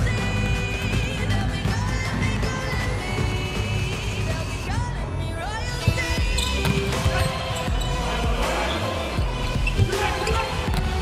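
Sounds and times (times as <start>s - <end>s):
pop music: 0.0s - 11.0s.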